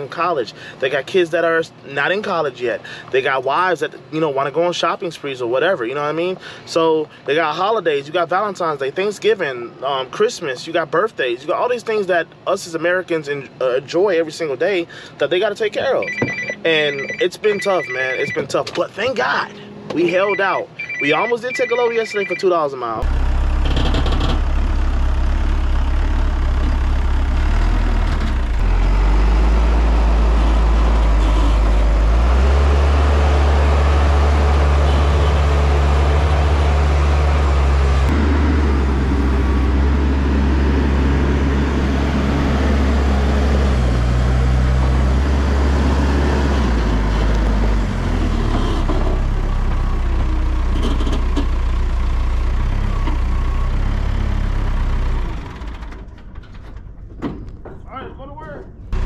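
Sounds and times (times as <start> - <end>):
diesel engine running: 23.0 - 56.6.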